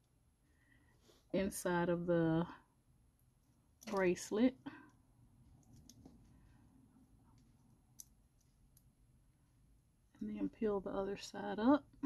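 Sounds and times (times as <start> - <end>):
small clicks of metal charms: 3.8 - 4.1, 7.3 - 8.9.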